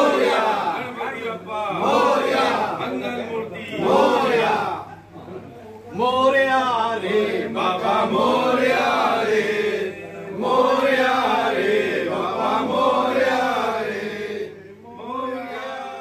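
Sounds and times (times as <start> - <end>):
men chanting together: 0.0 - 3.1, 3.7 - 4.9, 6.0 - 16.0.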